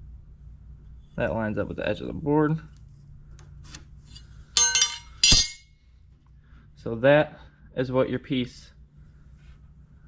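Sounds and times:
metal square clinking on concrete: 4.6s - 5.7s.

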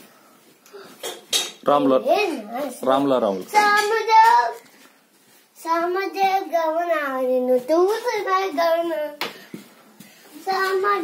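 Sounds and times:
boy's voice: 2.0s - 4.7s, 5.6s - 9.4s, 10.3s - 11.0s.

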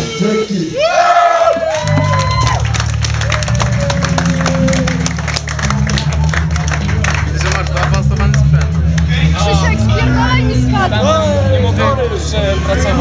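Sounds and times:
punk band playing live: 1.8s - 13.0s.

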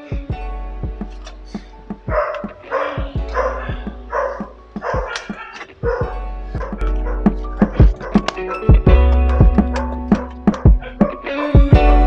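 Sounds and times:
plucked guitar music: 0.0s - 12.0s
dog barking: 2.1s - 11.5s.

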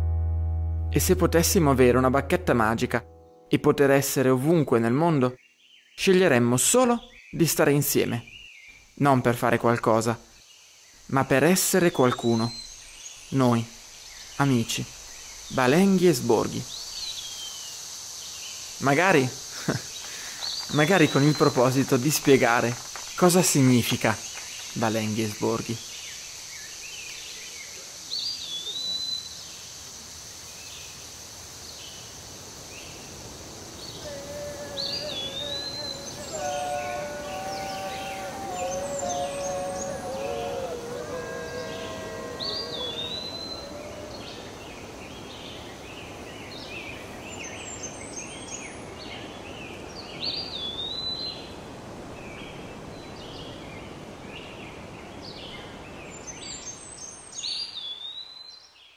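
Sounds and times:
faint sustained tones: 0.0s - 4.8s, 33.5s - 45.0s
insect hiss: 8.3s - 58.9s
bird chirps: 33.7s - 44.7s
bird slurred whistle: 33.9s - 44.5s.

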